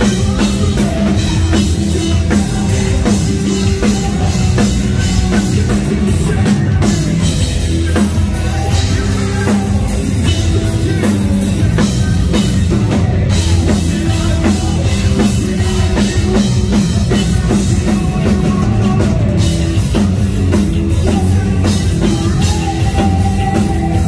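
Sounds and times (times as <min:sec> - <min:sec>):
person singing lead vocals: 0:00.0 - 0:24.0
rock band playing: 0:00.0 - 0:24.0.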